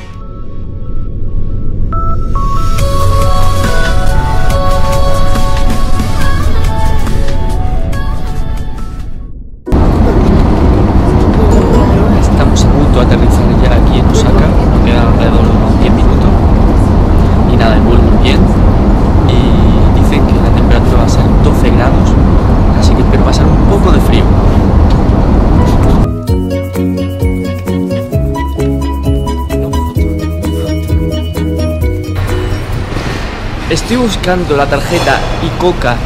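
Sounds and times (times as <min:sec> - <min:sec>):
airliner cabin roar: 0:00.0 - 0:26.4, 0:29.0 - 0:36.0
people talking: 0:11.1 - 0:24.5, 0:33.7 - 0:36.0
music with clear notes: 0:26.1 - 0:32.9.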